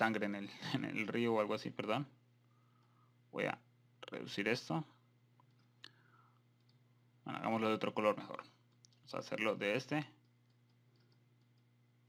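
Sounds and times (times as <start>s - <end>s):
faint low hum: 0.0s - 12.0s
computer mouse clicks: 5.4s - 6.0s, 6.6s - 6.8s, 10.2s - 11.8s.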